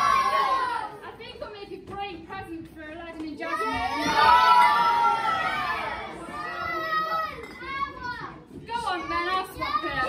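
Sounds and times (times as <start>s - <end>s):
children shouting: 0.0s - 1.0s, 3.5s - 10.0s.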